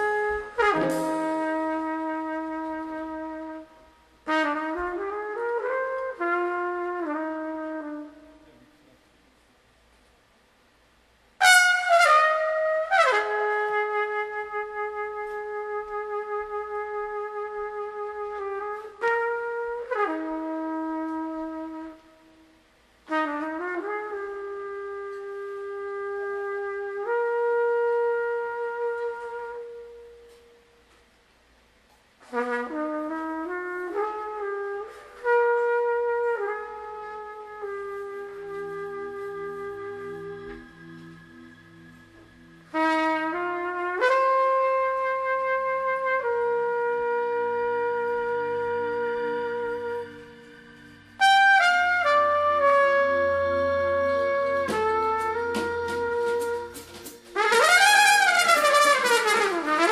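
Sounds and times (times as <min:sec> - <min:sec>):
jazz trumpet: 0:00.0 - 0:59.9.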